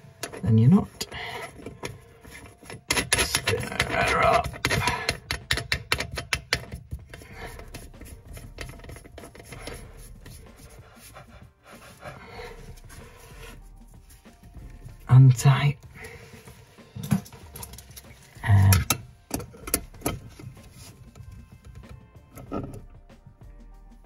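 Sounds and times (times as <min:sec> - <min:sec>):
plastic and brass parts clicking: 0:01.0 - 0:09.9, 0:17.0 - 0:22.8
faint rubbing: 0:07.1 - 0:15.1.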